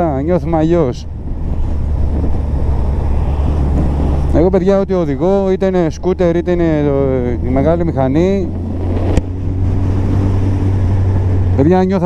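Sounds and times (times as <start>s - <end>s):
wind rush: 0.0s - 5.5s, 7.0s - 11.7s
motorcycle engine humming: 0.0s - 12.0s.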